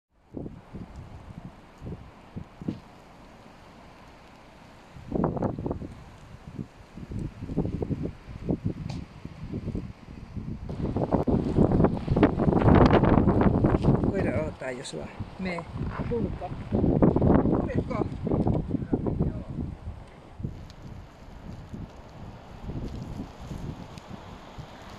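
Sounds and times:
wind gusting against microphone: 0.2 - 24.9.

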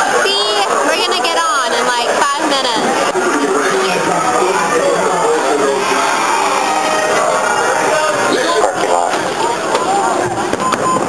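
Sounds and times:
people's voices: 0.0 - 11.0
fireworks cracking and popping: 9.7 - 11.0.

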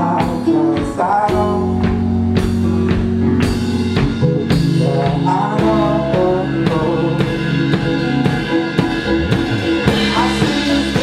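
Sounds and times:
drum kit beat with cymbals: 0.0 - 11.0
live rock band playing: 0.0 - 11.0.

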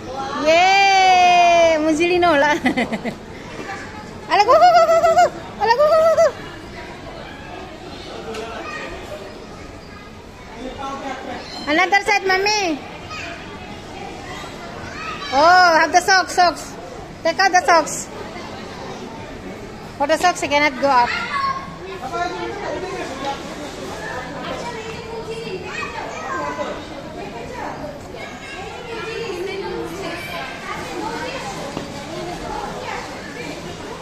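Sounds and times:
hubbub of voices: 0.0 - 34.0
distant children playing: 2.6 - 20.0, 20.7 - 34.0.

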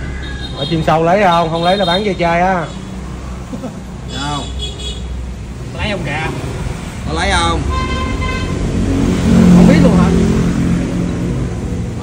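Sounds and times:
vehicle engine passing: 5.1 - 12.0.

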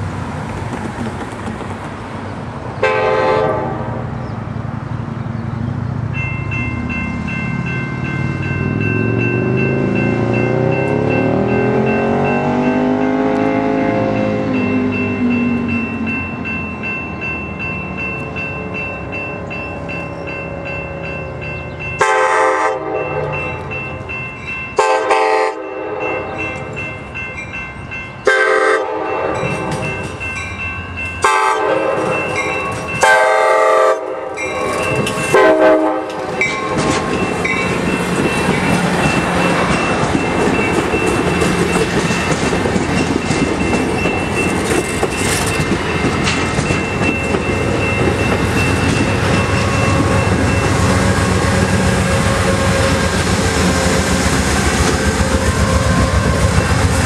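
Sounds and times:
train wheels rushing on rails: 0.0 - 57.0
train horn blasts: 2.8 - 4.2, 13.0 - 14.4, 22.0 - 23.7, 24.8 - 26.7, 28.2 - 29.8, 31.2 - 34.5, 35.2 - 36.5
crossing signal bell ringing: 6.0 - 57.0.

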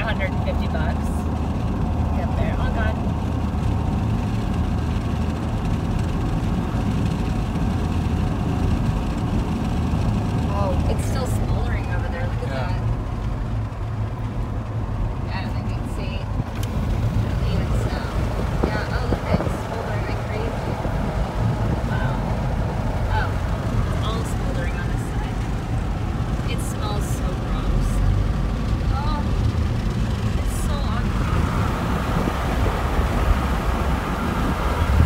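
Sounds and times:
car cabin road noise: 0.0 - 35.0.

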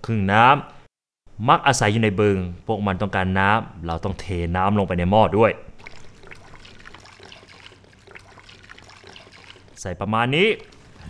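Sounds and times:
liquid trickling into metal pot: 5.8 - 9.8, 10.5 - 11.0.

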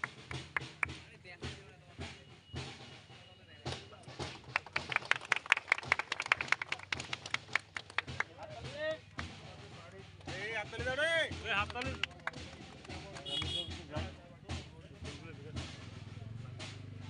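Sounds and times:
people clapping: 0.0 - 1.0, 3.7 - 9.4, 10.1 - 13.8.

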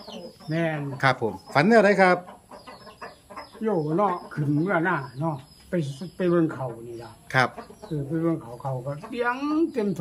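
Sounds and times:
chickens clucking faintly: 0.0 - 10.0.

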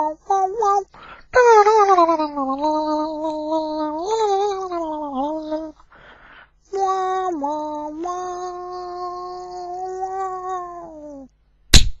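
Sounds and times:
loud sharp crack: 11.7 - 12.0.

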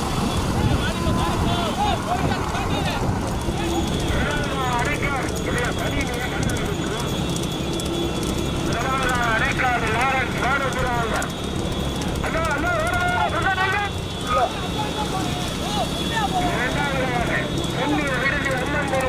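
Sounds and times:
road noise: 0.0 - 19.0
trotting horses clattering: 0.0 - 19.0
vehicle engine rumble: 0.0 - 19.0.

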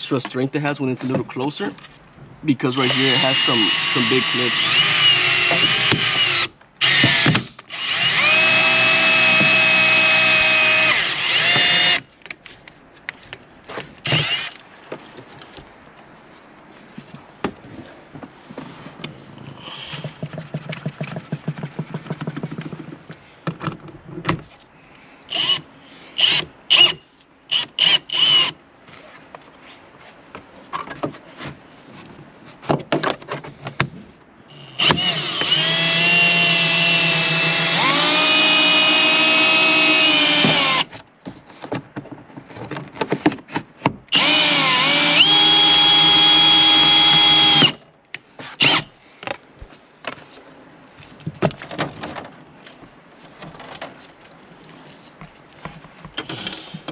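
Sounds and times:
cordless drill motor whine: 2.8 - 12.0, 14.1 - 14.6, 25.3 - 25.6, 26.2 - 28.5, 34.5 - 40.9, 44.1 - 47.8, 48.6 - 48.9.

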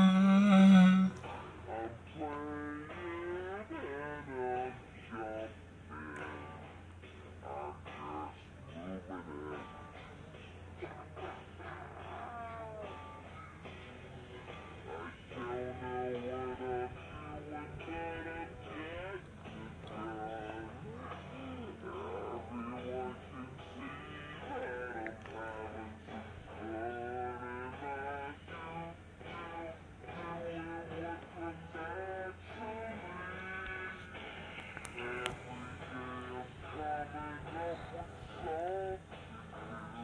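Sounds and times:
slowed-down cartoon song: 0.0 - 4.8, 14.9 - 40.0
steady low hum: 0.0 - 40.0.

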